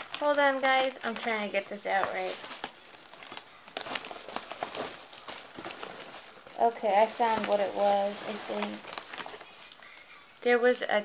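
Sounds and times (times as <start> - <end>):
crinkly bag rustling: 0.0 - 11.0.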